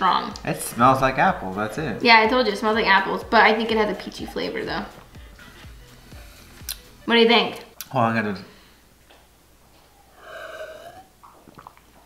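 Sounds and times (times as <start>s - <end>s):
gulp with bottle gurgle: 10.6s - 12.0s.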